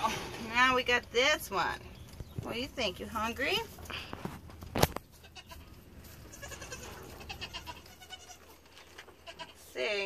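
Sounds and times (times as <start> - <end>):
goat kid bleating: 5.2 - 9.8.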